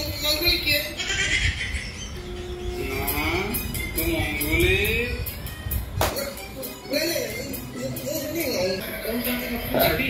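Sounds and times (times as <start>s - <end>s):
background music: 1.9s - 10.0s.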